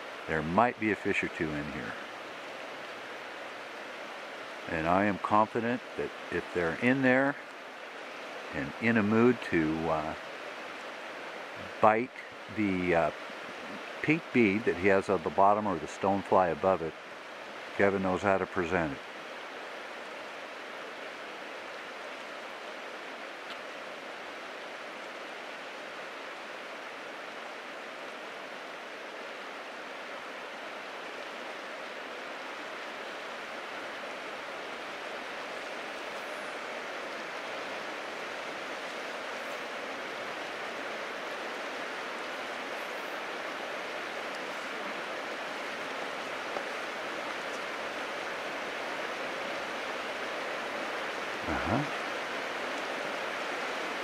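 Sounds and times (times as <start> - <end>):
river current rushing: 0.0 - 54.0.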